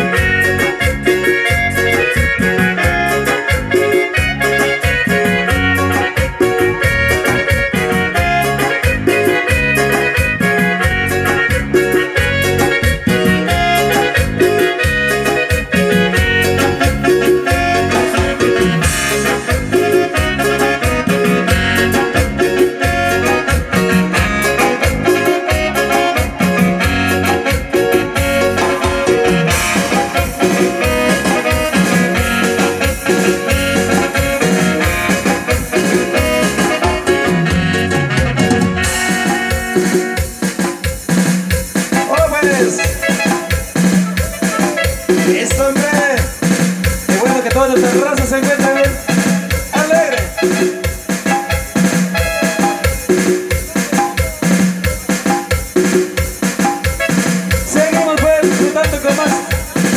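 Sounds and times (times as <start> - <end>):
band playing dance music: 0.0 - 59.9
keyboard: 0.0 - 59.9.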